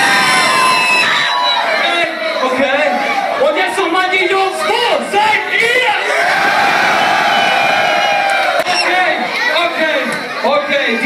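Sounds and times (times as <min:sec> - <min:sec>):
crowd yelling: 0:00.0 - 0:11.0.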